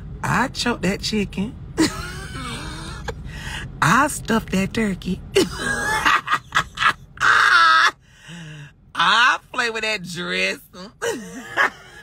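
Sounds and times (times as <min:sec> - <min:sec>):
woman laughing: 0:01.8 - 0:03.3, 0:05.4 - 0:08.0, 0:11.0 - 0:12.0.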